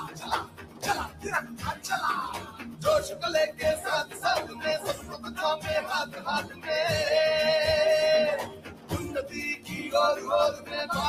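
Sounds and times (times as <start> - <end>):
pop song sung over a beat: 0.0 - 11.0.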